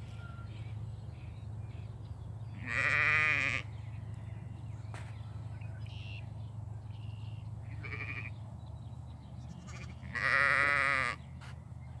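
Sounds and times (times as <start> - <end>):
sheep bleating: 2.6 - 3.7, 7.7 - 8.3, 9.6 - 11.2.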